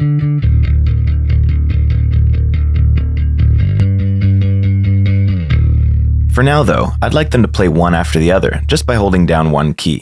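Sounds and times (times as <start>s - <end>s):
electric bass guitar run: 0.0s - 9.6s.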